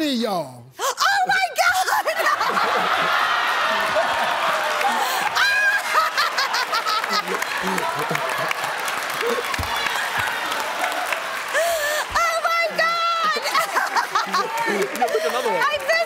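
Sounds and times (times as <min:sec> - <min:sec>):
studio audience laughing and clapping: 0:01.6 - 0:16.0.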